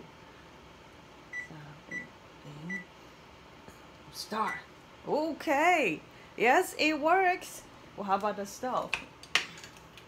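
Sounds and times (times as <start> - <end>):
short high oven control beeps: 1.3 - 2.1.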